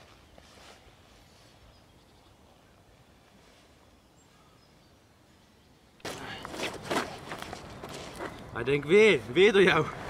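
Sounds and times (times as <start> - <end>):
rustling handling noise: 6.0 - 8.5.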